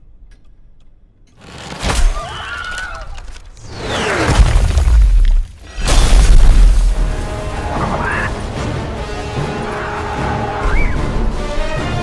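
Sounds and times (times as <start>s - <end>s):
music: 5.6s - 12.0s
falling whistle: 10.6s - 11.1s.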